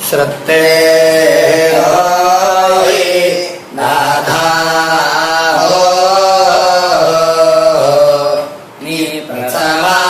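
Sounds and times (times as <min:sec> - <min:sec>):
person chanting in held notes: 0:00.0 - 0:10.0.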